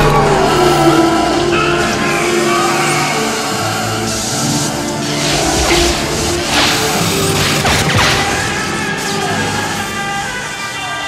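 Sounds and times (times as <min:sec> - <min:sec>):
noisy whooshing sweeps: 0:00.0 - 0:09.3
crackling electric sound effect: 0:00.0 - 0:09.9
orchestral film music: 0:00.0 - 0:11.0.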